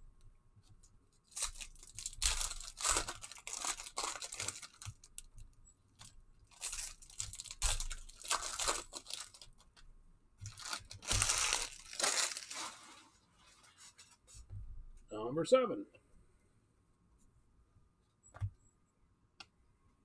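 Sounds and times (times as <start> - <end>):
foil wrapper crinkling and tearing: 1.3 - 5.4, 6.0 - 9.8, 10.4 - 13.1.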